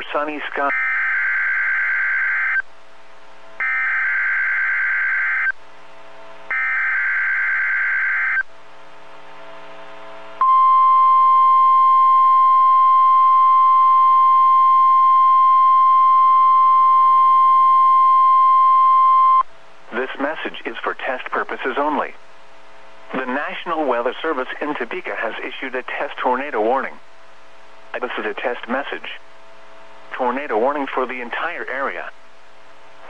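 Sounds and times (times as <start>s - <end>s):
steady warning alarm tone: 0.6s - 2.6s, 3.6s - 5.6s, 6.5s - 8.4s.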